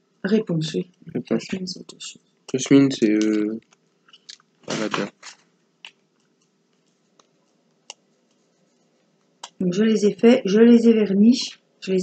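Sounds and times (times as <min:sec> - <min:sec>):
person murmuring: 0:01.1 - 0:03.6, 0:04.7 - 0:05.2.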